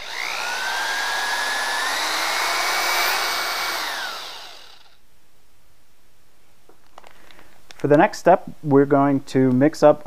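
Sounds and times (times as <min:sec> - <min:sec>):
electric drill motor whining: 0:00.0 - 0:05.0.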